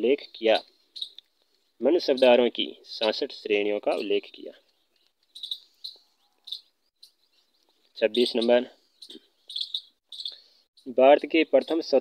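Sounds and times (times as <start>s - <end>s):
small bird chirping: 0.1s - 2.5s, 3.1s - 12.0s.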